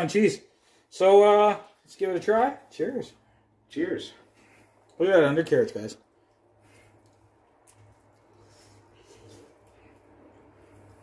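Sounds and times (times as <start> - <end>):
low steady hum: 2.4 - 11.0
people chewing: 6.3 - 11.0.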